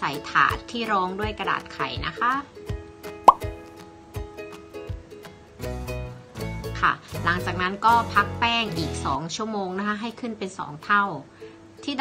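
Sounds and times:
background music: 0.0 - 12.0
rising plop sound effect: 3.3 - 3.5.

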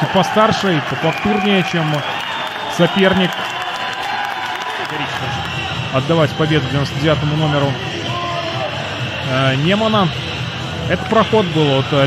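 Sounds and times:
arena crowd applauding and cheering: 0.0 - 12.0.

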